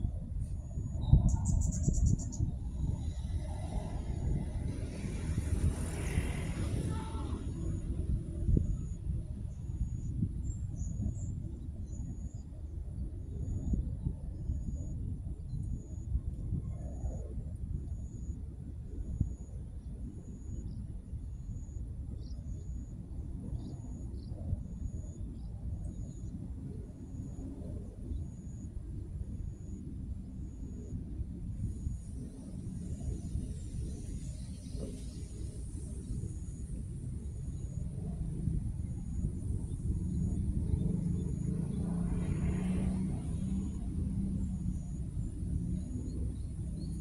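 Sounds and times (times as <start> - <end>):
wind rumbling on microphone: 0.0 - 47.0
faint high chirp: 0.5 - 3.2.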